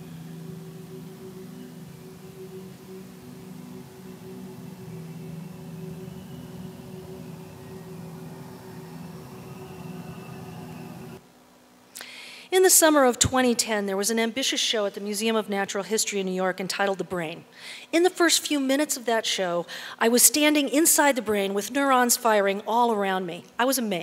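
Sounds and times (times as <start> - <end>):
ambient drone: 0.0 - 11.2
soft hiss: 0.0 - 20.5.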